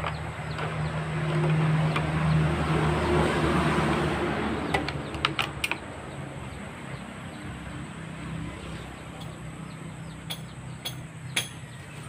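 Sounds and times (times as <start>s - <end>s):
passing vehicle engine hum: 0.0s - 12.0s.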